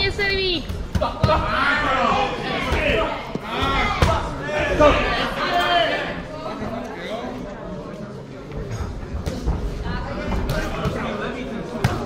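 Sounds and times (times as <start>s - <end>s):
voices and shouts echoing: 0.0s - 8.8s.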